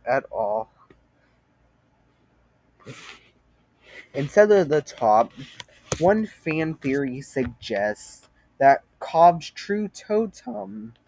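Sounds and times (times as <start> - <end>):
person reading aloud: 0.0 - 0.8, 4.1 - 11.0.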